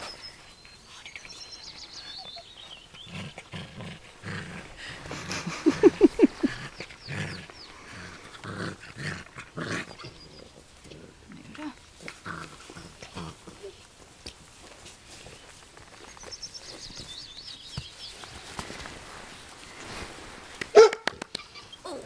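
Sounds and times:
puppies barking: 20.8 - 21.0.

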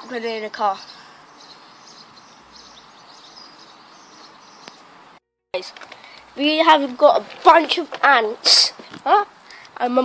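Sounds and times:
distant birds chirping: 0.0 - 9.8
faint outdoor background noise: 0.0 - 10.0.

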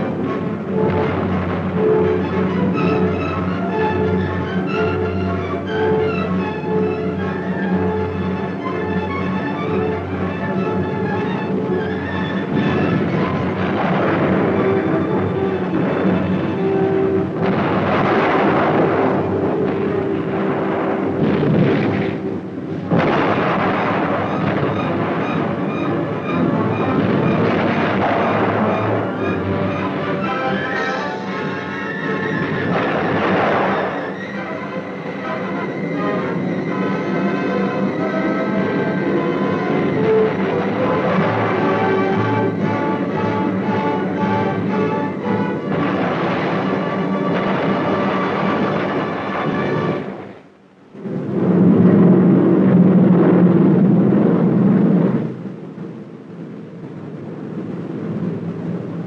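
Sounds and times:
orchestral music: 0.0 - 51.1
timpani: 0.0 - 56.1.

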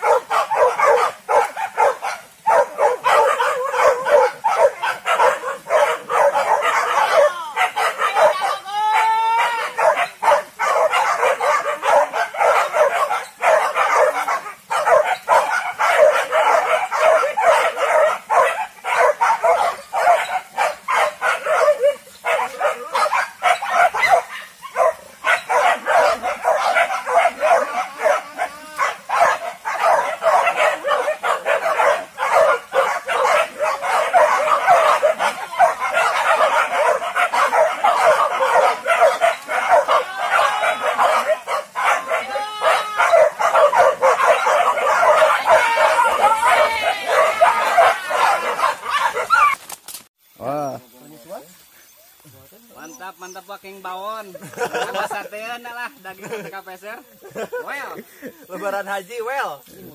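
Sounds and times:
dogs barking and baying: 0.0 - 49.6, 54.4 - 55.2.

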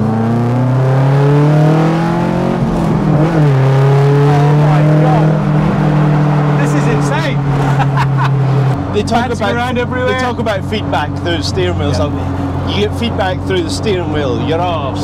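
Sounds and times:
car engine revving: 0.0 - 15.0.

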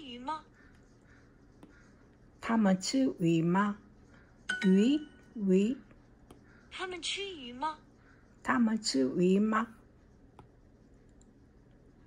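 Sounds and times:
stylus tapping glass screen: 4.5 - 5.3.

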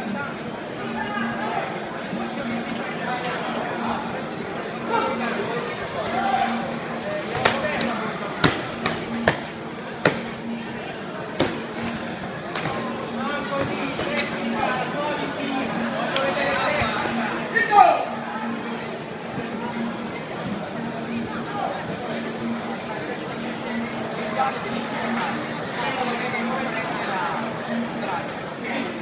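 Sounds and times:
chatter of voices: 0.0 - 29.0.

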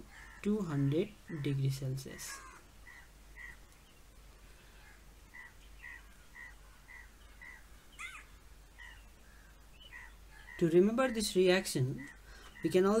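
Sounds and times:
gliding bird call: 4.7 - 10.6
bird calling short notes: 5.4 - 9.0.

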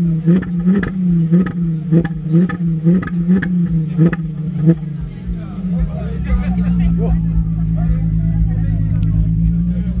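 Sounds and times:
car engine idling: 0.0 - 10.0
people talking: 3.6 - 10.0.

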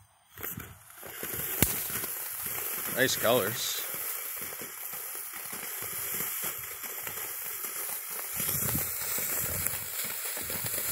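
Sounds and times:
firework fountain hissing: 0.0 - 10.9
sharp crack: 0.6 - 10.1.

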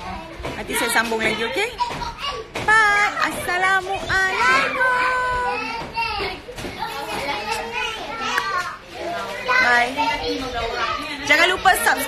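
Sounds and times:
children talking and playing: 0.0 - 12.0.

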